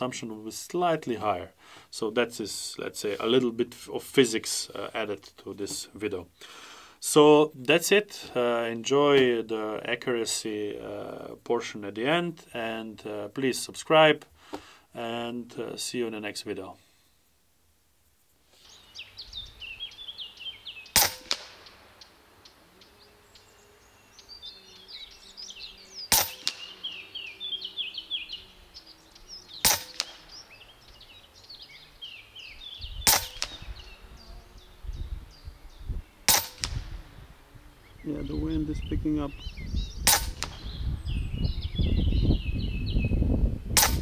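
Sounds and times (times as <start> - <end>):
air rifle shots: 20.9 - 22.0, 26.1 - 27.0, 29.6 - 30.5, 33.0 - 33.8, 36.3 - 37.1, 40.0 - 40.8, 43.8 - 44.0.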